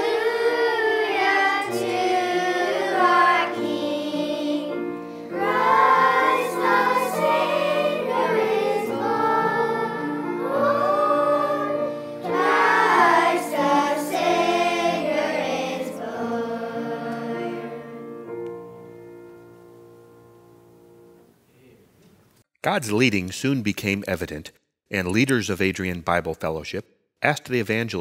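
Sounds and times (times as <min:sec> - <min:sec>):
choir singing: 0:00.0 - 0:18.3
instrumental accompaniment: 0:00.0 - 0:21.4.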